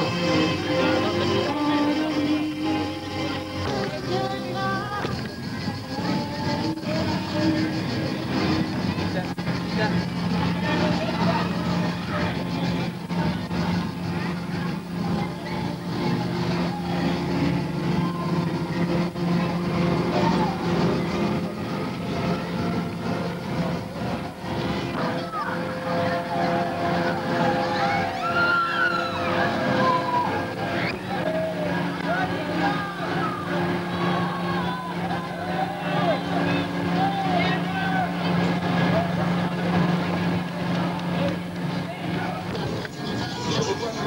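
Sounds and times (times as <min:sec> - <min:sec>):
ride machinery humming: 0:00.0 - 0:44.0
voices: 0:00.0 - 0:44.0.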